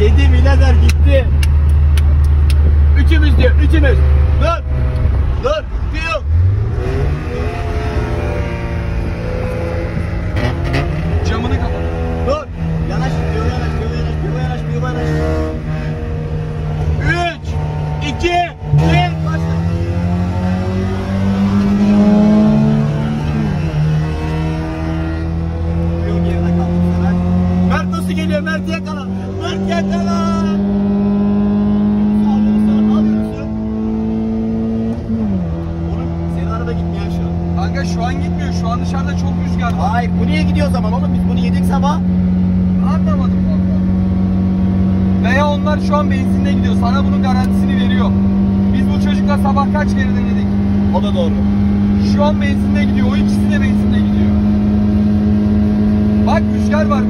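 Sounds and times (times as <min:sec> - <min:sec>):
car engine droning: 0:00.0 - 0:57.0
road and wind noise: 0:00.0 - 0:57.0.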